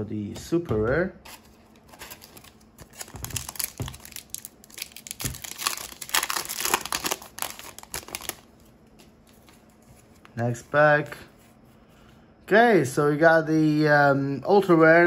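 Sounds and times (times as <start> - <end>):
foil wrapper crinkling and tearing: 1.8 - 9.5.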